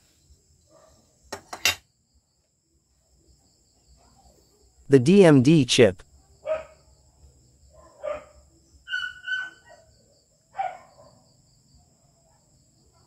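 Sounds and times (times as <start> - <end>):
dog barking: 0.7 - 1.2, 4.0 - 4.4, 6.2 - 6.9, 7.7 - 11.4, 12.0 - 13.0
insect chirring: 6.0 - 12.0.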